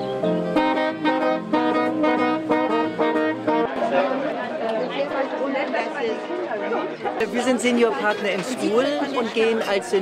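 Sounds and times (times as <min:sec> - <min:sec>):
people talking at once: 0:03.0 - 0:10.0.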